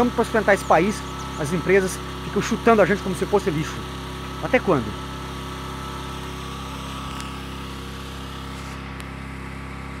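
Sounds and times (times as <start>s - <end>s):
generator engine humming: 0.0s - 10.0s.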